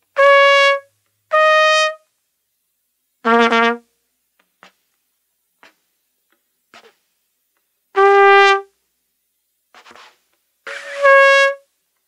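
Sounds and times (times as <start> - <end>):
trumpet held note: 0.2 - 2.0, 8.0 - 8.7, 10.7 - 11.7
trumpet air puffs: 3.2 - 3.9, 8.0 - 8.7, 9.7 - 11.7.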